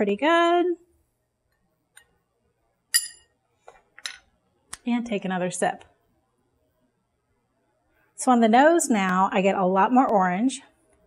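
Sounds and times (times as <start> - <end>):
spoon clinking against glass: 3.0 - 3.3.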